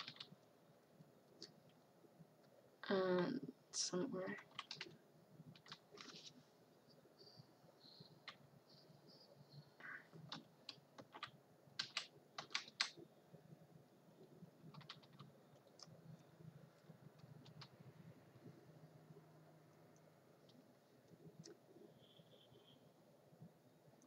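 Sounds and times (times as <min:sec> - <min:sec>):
computer keyboard clicks: 0:00.0 - 0:00.3, 0:04.4 - 0:04.9, 0:05.5 - 0:06.2, 0:10.3 - 0:13.0, 0:14.7 - 0:15.9, 0:17.2 - 0:17.8.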